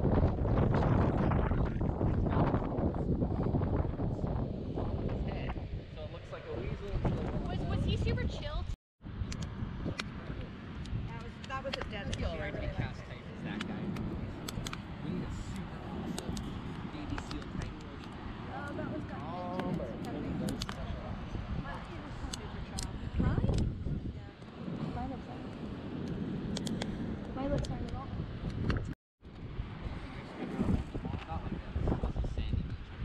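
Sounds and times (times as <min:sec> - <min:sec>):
campfire crackling: 0:09.1 - 0:31.9
people chattering: 0:11.1 - 0:25.5.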